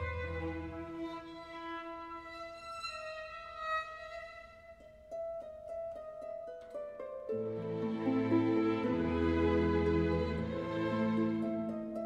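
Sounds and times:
classical violin music: 0.0 - 5.3, 7.4 - 12.0.

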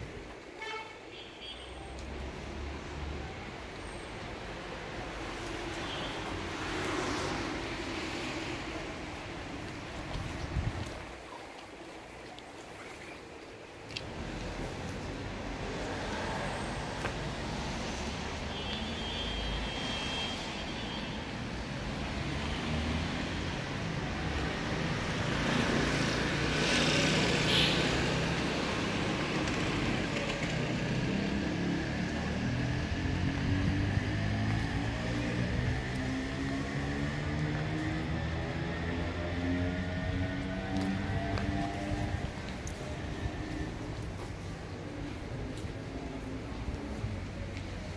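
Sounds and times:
road traffic: 0.0 - 47.9.

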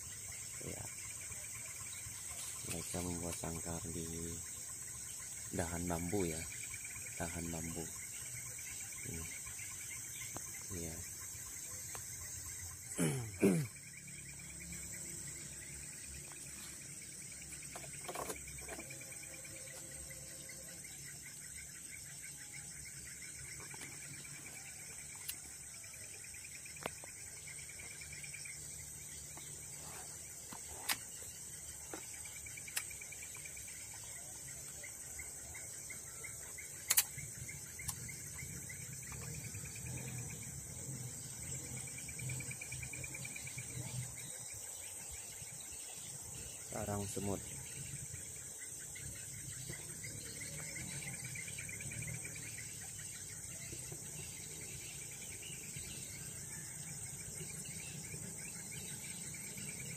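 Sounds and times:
low insect trill: 0.0 - 59.9
sharp clicks: 36.8 - 37.2.

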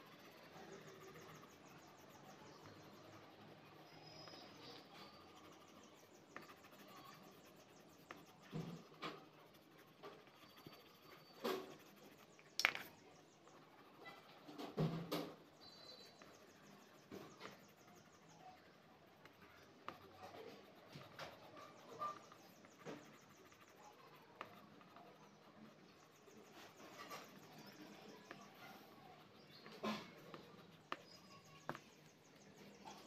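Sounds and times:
pencil scratching on paper: 0.0 - 33.0
sharp clicks and soft knocks: 11.4 - 13.2.

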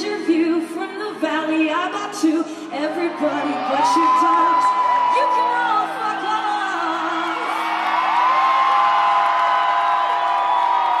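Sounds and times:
crowd cheering and screaming: 2.8 - 11.0
high-pitched whoops: 3.6 - 6.0, 7.1 - 11.0.

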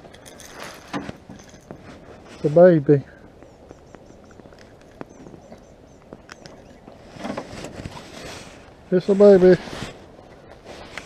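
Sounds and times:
short rustling: 7.0 - 11.0.

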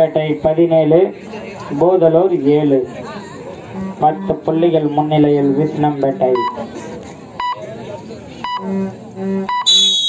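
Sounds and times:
short beeps: 6.4 - 6.6, 7.4 - 7.6, 8.4 - 8.7, 9.5 - 10.0
referee's whistle blast: 9.5 - 10.0.

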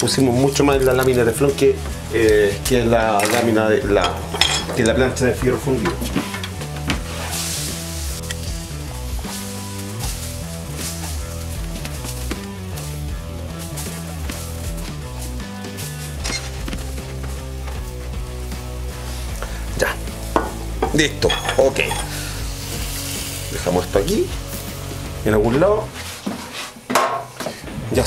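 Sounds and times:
background music with bass line: 0.0 - 26.2.

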